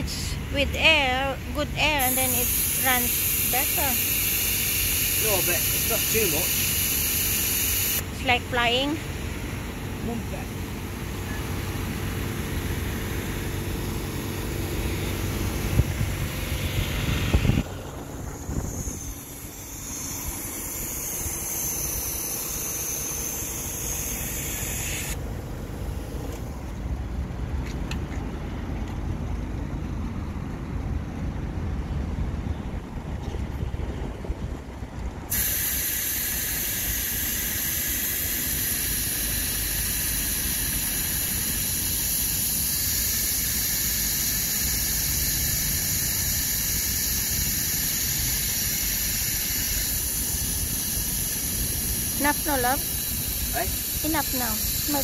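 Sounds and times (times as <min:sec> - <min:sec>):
compressed air hissing: 0:01.9 - 0:08.3, 0:11.3 - 0:25.2, 0:35.3 - 0:55.0.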